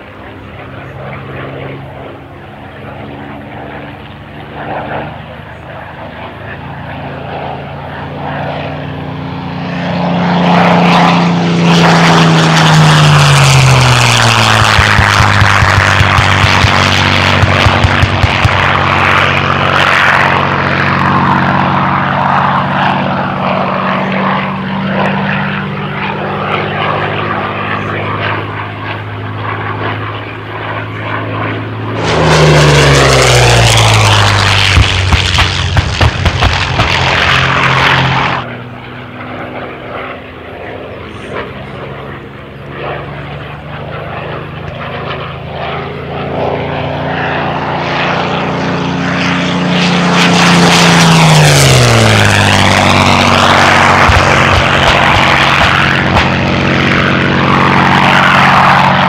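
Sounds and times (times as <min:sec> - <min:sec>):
propeller plane flying overhead: 0:00.0 - 0:59.0.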